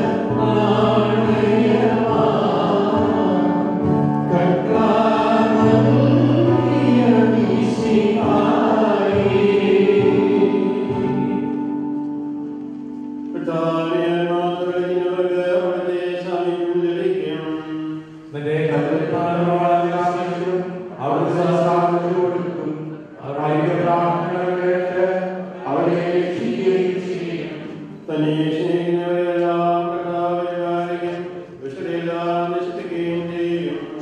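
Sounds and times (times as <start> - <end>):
voices chanting in unison: 0.0 - 11.5, 23.5 - 27.7.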